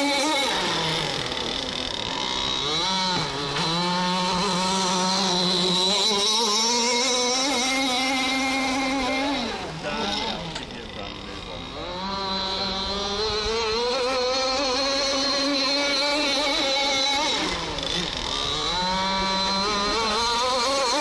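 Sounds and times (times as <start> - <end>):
two-stroke engine racing boat: 0.0 - 21.0.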